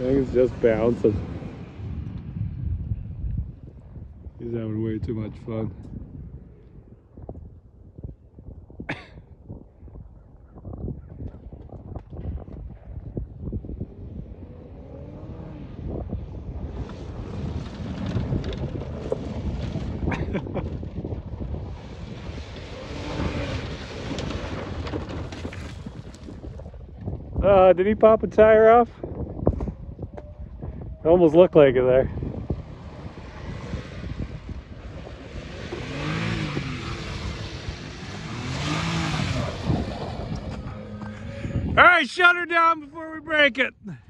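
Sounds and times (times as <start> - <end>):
tyres rumbling over rough ground: 0.0 - 7.2, 11.1 - 44.0
engine revving: 13.8 - 20.4, 21.4 - 25.8, 31.6 - 41.8.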